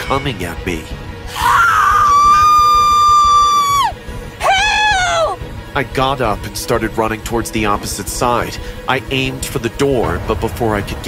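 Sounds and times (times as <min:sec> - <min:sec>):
background music: 0:00.0 - 0:11.0
woman screaming: 0:01.3 - 0:05.4.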